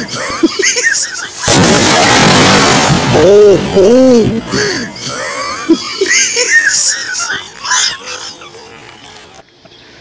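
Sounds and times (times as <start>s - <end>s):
loud steady burning noise: 0.0s - 7.8s
sparkler bomb bang: 1.4s - 3.6s.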